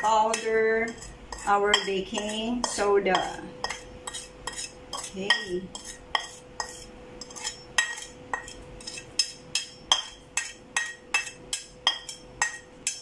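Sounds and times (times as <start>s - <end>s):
metal spatula tapping ceramic plate: 0.0s - 13.0s.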